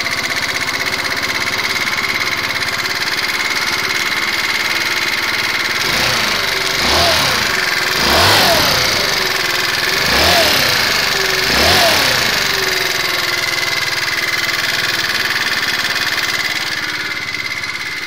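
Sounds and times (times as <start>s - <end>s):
engine ticking: 0.0s - 18.0s
scooter engine idling and revving: 0.0s - 18.0s.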